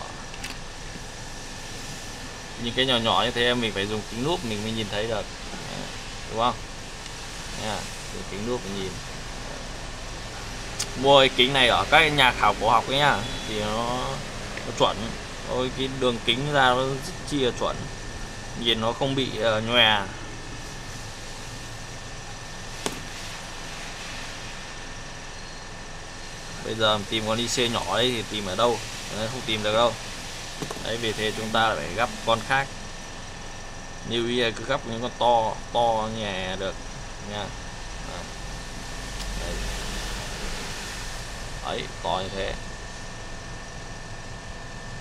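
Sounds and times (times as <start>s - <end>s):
workshop background hum: 0.0s - 45.0s
airflow hiss: 1.1s - 37.5s, 38.1s - 42.6s
hard object clicking on bench: 30.6s - 30.9s.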